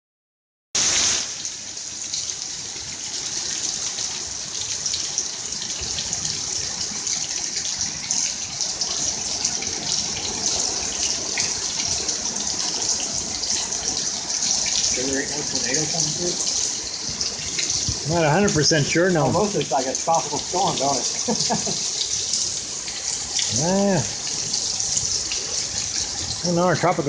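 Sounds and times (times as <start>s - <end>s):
heavy rain pouring: 0.8s - 27.0s.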